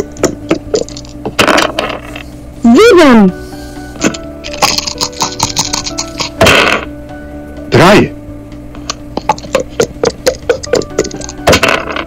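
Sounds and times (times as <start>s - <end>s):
dice rattling in shaker cup: 4.5s - 6.4s.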